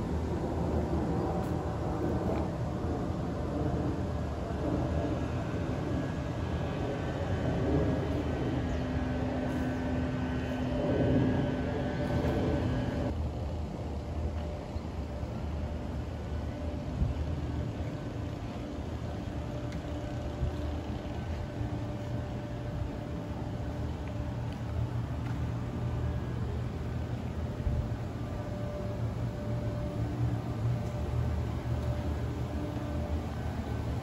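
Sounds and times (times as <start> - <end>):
low engine-like hum: 0.0 - 34.0
traffic rumble: 0.0 - 34.0.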